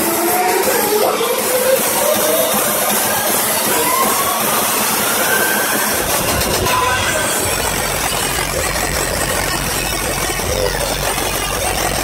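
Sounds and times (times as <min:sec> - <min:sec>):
electronic dance music build-up: 0:00.0 - 0:12.0
heavy bass: 0:00.0 - 0:12.0
rising synth tone: 0:01.6 - 0:12.0.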